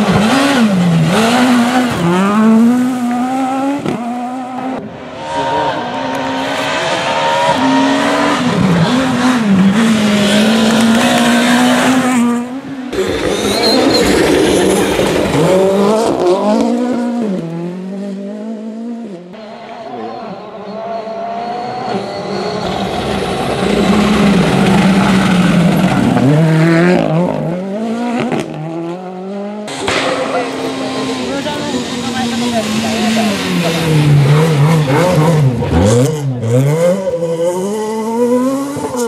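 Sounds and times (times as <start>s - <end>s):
rally car engine revving: 0.0s - 39.0s.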